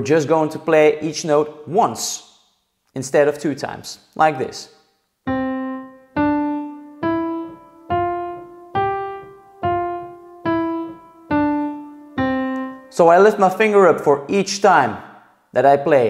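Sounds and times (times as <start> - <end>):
digital piano single notes: 5.3 - 13.4.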